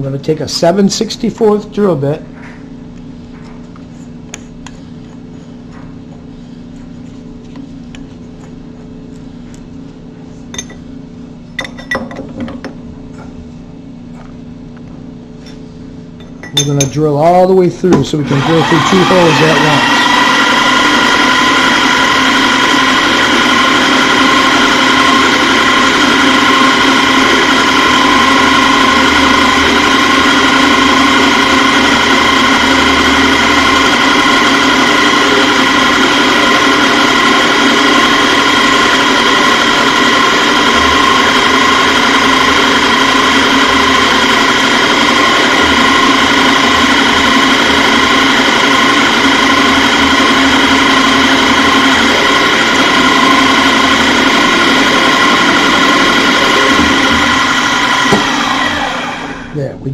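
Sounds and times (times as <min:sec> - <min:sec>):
drill press drilling metal: 0:16.4 - 0:20.3, 0:24.6 - 0:41.4, 0:42.0 - 0:58.8.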